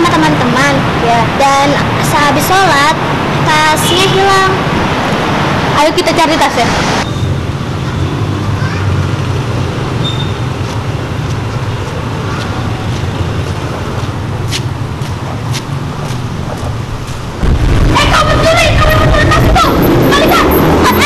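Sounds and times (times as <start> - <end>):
distant road traffic rumble: 0.0 - 21.0.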